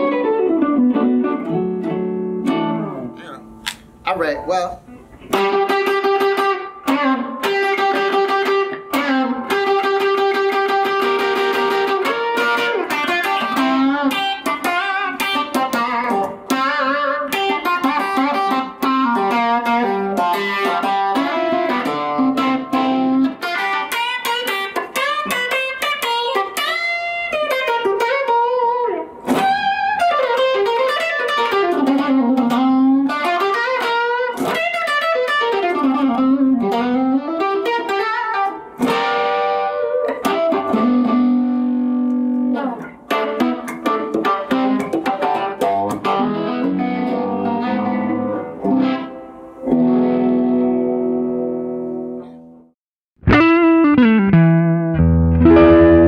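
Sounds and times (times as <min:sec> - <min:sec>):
electric guitar lead runs: 0:05.2 - 0:52.2, 0:53.2 - 0:56.0.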